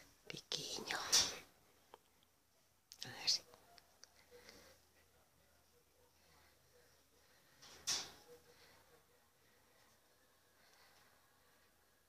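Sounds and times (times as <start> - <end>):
person whispering: 0.2 - 1.6, 2.9 - 7.3.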